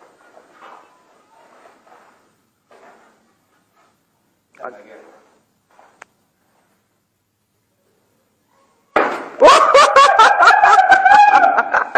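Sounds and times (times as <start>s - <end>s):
loud laughter: 9.4s - 11.9s.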